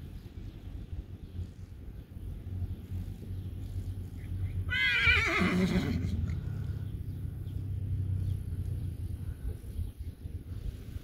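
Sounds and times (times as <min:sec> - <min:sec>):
horse whinnying: 0:04.7 - 0:06.2.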